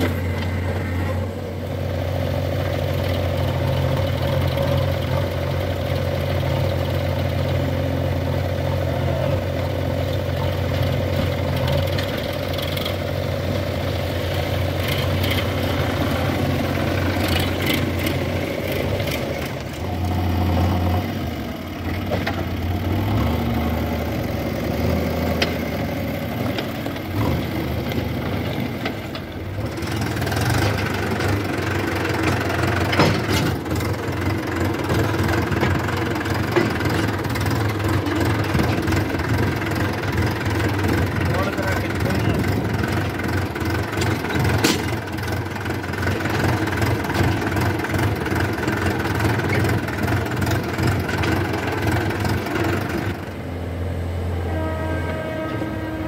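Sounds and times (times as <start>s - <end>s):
diesel engines running: 0.0s - 56.0s.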